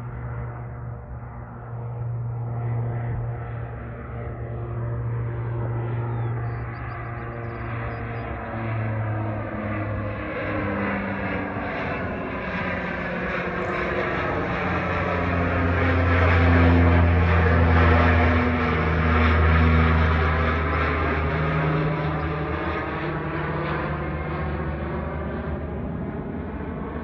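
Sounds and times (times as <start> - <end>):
turboprop plane droning overhead: 0.0 - 27.0.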